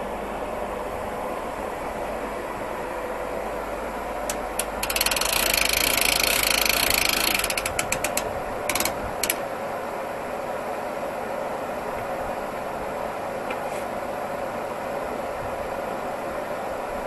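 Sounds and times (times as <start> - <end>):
steady background hum: 0.0 - 17.0
ratchet clicking: 4.3 - 9.4.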